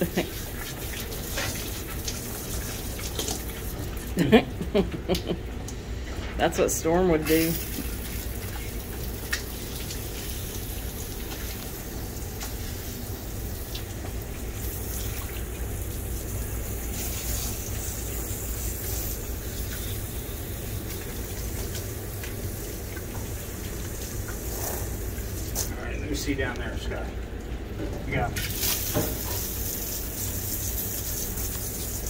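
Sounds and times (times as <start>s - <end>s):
water spraying from hose: 0.0s - 4.4s, 6.4s - 25.8s, 28.1s - 32.0s.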